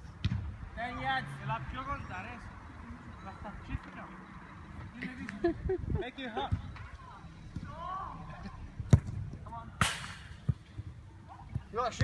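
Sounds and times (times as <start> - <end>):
ball impact: 8.9 - 10.7.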